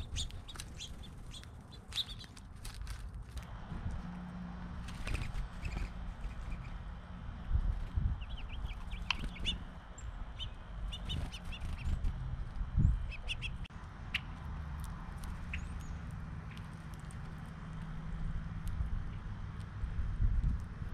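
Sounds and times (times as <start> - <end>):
songbirds chirping: 0.0 - 20.1
steady low rumble: 2.8 - 20.9.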